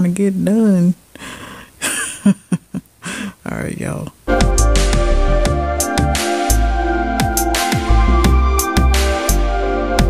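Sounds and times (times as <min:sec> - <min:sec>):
woman laughing breathily: 0:01.2 - 0:03.4.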